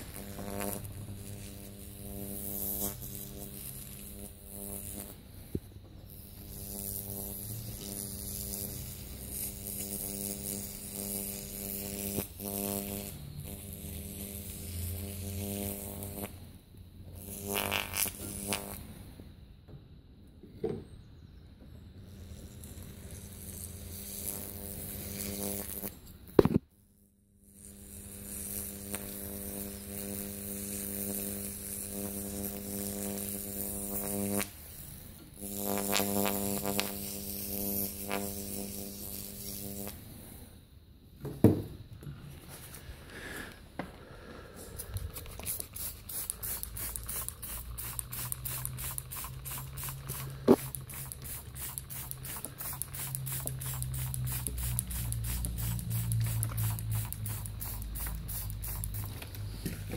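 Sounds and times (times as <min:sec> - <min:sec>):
electrical buzz with faint sizzle: 0:00.0 - 0:59.9.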